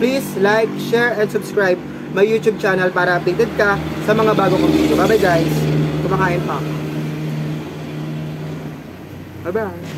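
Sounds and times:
steady motor hum: 0.0s - 9.9s.

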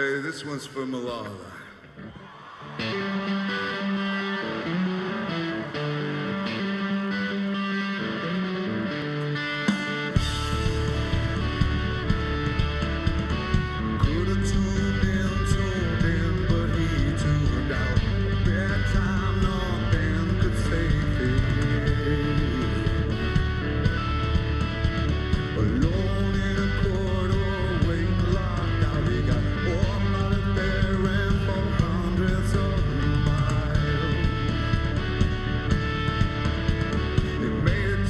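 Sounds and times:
electric guitars: 0.0s - 38.0s
bass: 2.9s - 38.0s
drum kit: 9.7s - 38.0s.

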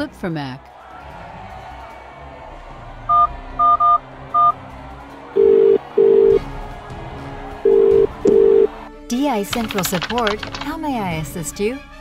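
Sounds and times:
telephone ringing tone: 3.1s - 4.5s, 5.4s - 6.4s, 7.7s - 8.7s.

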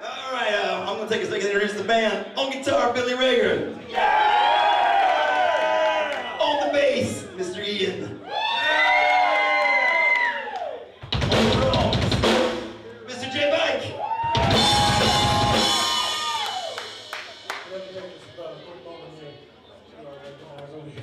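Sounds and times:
drum kit and cymbals: 11.0s - 12.9s, 14.3s - 18.0s.

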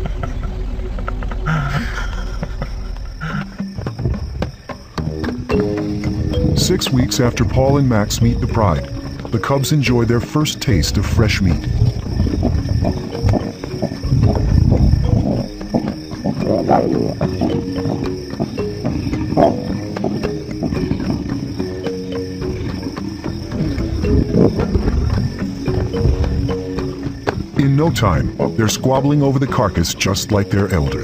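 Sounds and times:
background music with held notes: 2.9s - 31.0s
lions growling: 4.9s - 29.4s.

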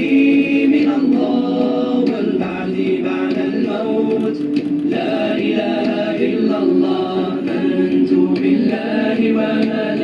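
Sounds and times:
group singing a cappella: 0.0s - 10.0s.

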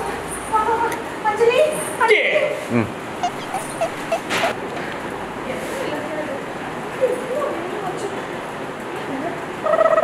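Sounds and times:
woman laughing: 2.8s - 4.5s.

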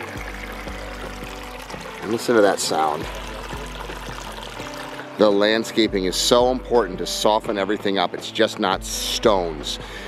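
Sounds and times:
water trickling over rocks: 0.0s - 5.8s
soft background music: 0.0s - 10.0s.

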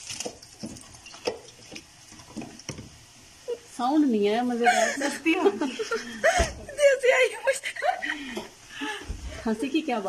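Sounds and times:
fries plopping into oil: 0.0s - 3.2s
fries sizzling in oil: 0.0s - 6.2s.

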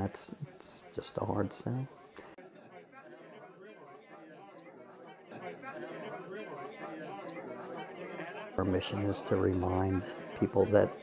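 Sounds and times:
many people chatting: 0.0s - 11.0s.

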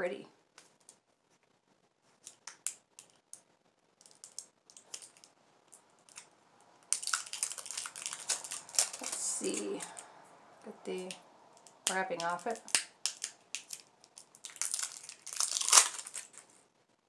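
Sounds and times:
bubble wrap crinkling: 0.5s - 10.1s, 10.9s - 16.8s.

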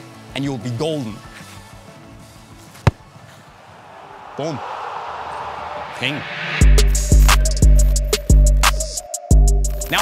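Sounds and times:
faint background music: 0.0s - 3.2s
football kicked hard: 2.8s - 3.1s.

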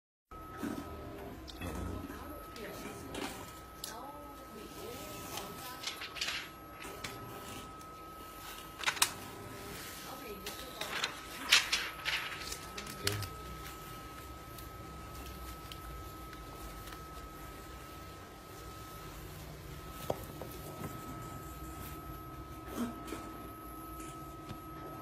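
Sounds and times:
plastic film peeling crackles: 7.7s - 9.3s, 10.1s - 17.8s.

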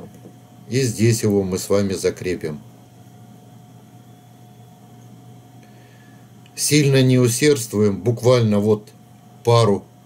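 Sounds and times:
faint thin whine: 0.0s - 10.0s
low hum: 0.0s - 10.0s.

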